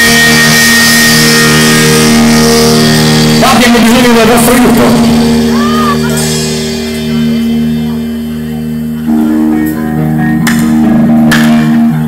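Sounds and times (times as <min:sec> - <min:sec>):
sustained electric guitar chord: 0:00.0 - 0:12.0.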